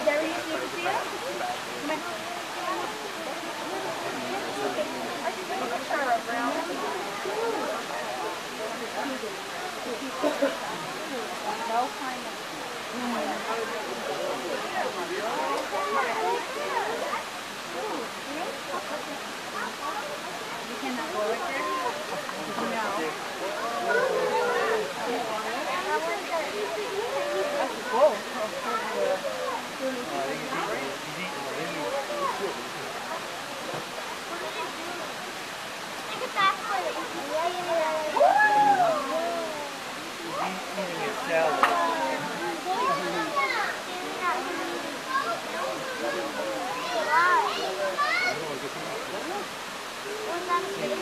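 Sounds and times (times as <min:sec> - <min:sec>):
people chattering: 0:00.0 - 0:51.0
steady background hiss: 0:00.0 - 0:51.0.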